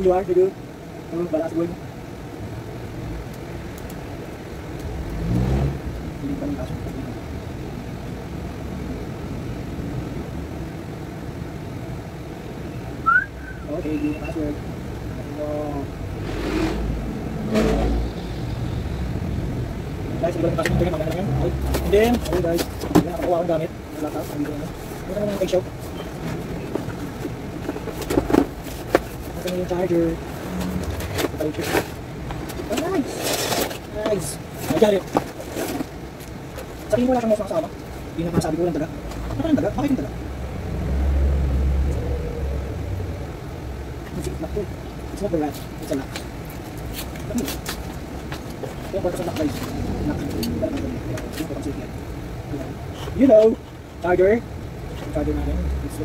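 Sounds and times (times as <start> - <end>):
low engine-like rumble: 1.8 - 33.0, 35.9 - 56.0.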